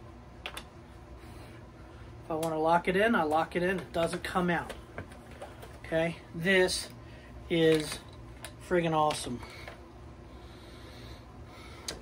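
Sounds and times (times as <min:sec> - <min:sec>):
low room hum: 0:00.0 - 0:12.0
man breathing through nose: 0:09.4 - 0:12.0.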